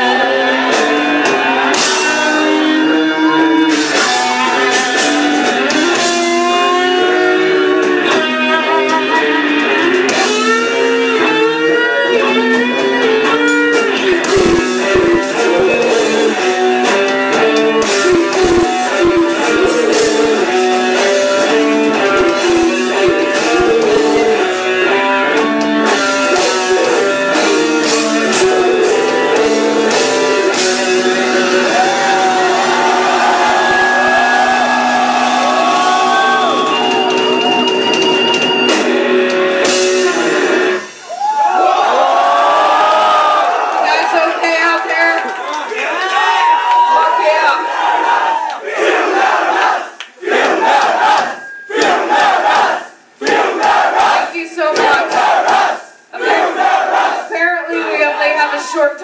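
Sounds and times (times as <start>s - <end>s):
bent wavering guitar notes: 0.0s - 41.0s
death metal band playing live: 0.0s - 45.1s.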